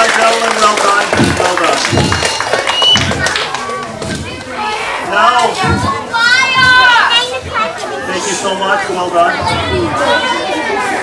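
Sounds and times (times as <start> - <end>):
children shouting and chattering: 0.9 - 11.0.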